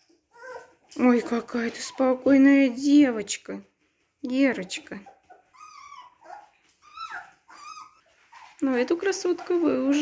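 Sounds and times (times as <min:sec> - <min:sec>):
puppy whining: 0:00.0 - 0:02.5, 0:04.8 - 0:10.0.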